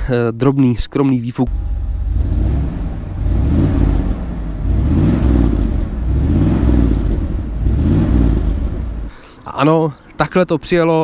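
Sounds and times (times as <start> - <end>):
car engine revving: 1.5 - 9.1.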